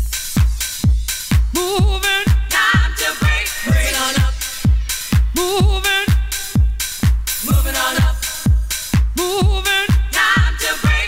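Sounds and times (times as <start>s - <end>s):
kick drum: 0.0s - 11.0s.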